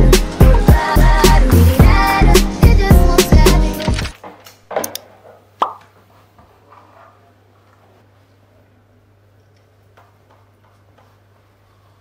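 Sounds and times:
music: 0:00.0 - 0:04.1.

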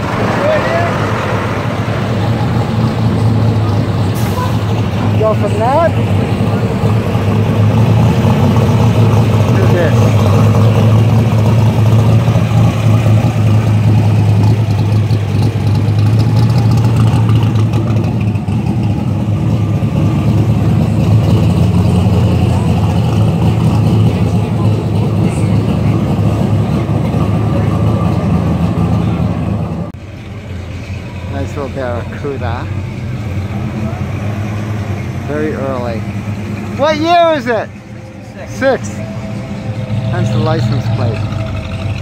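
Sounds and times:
car engine deep rumble: 0:00.0 - 0:42.0.

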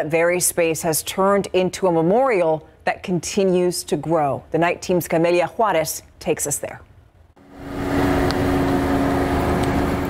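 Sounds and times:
car driving slowly past: 0:07.4 - 0:10.0.

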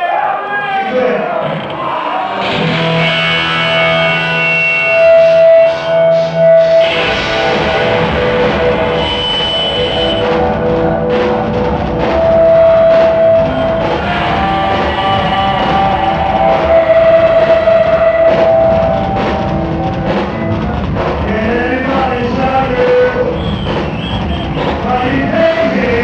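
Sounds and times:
sustained electric guitar notes: 0:02.5 - 0:26.0
steady drumming: 0:06.8 - 0:26.0.

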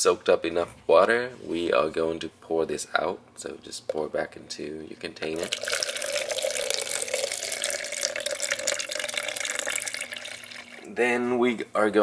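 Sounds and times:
water trickling into plastic cup: 0:05.3 - 0:11.0.

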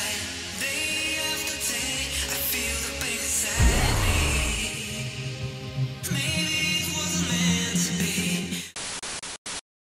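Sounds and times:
background music: 0:00.0 - 0:08.7.

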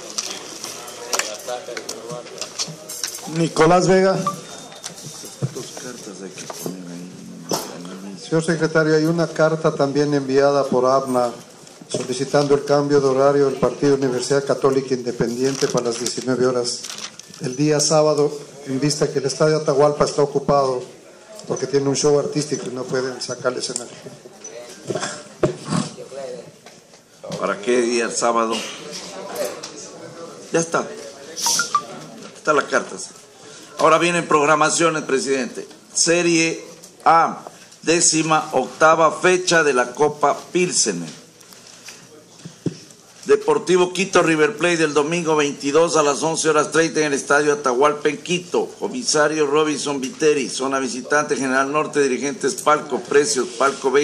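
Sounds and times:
indistinct voices: 0:06.4 - 0:08.5.

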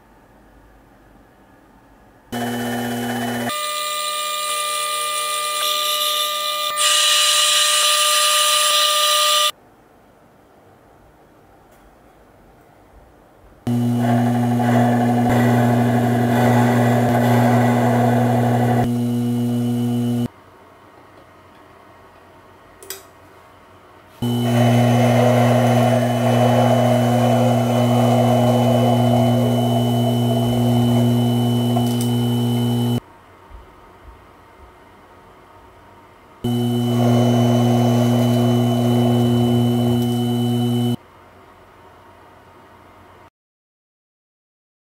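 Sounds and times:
lathe motor humming and whining: 0:02.4 - 0:03.6, 0:13.7 - 0:20.3, 0:24.2 - 0:33.0, 0:36.5 - 0:41.0
lathe tool scraping metal: 0:13.7 - 0:20.3, 0:24.2 - 0:33.0, 0:36.5 - 0:41.0.

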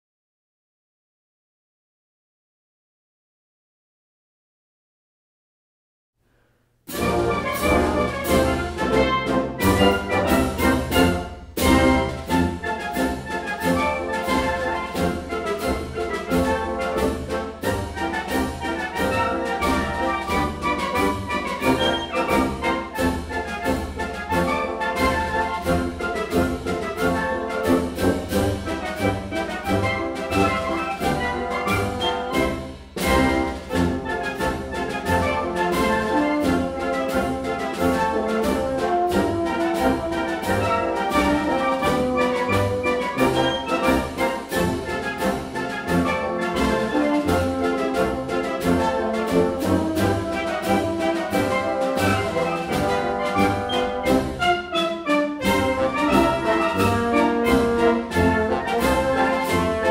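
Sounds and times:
concert band playing march: 0:06.9 - 0:59.9.

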